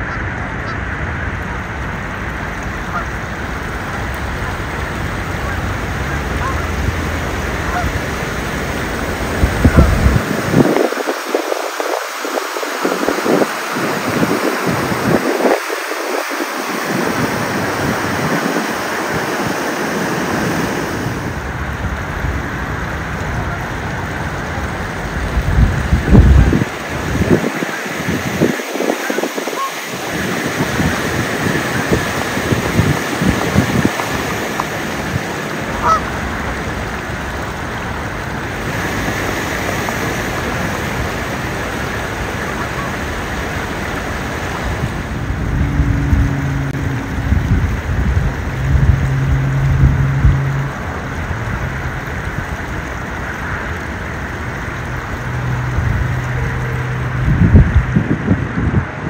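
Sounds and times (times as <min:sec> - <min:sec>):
geese honking: 0:00.0 - 0:01.7, 0:02.4 - 0:10.4, 0:27.2 - 0:36.7, 0:40.4 - 0:44.8
moving water: 0:00.0 - 0:59.0
wind on microphone: 0:00.0 - 0:59.0.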